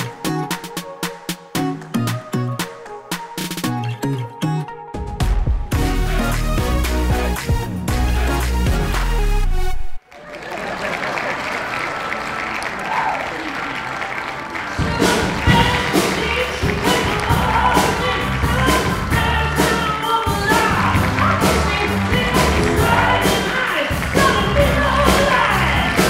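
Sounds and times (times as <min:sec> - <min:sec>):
drums and bass beat: 0:05.0 - 0:09.3, 0:14.8 - 0:26.0
band music: 0:05.0 - 0:10.0, 0:11.9 - 0:26.0.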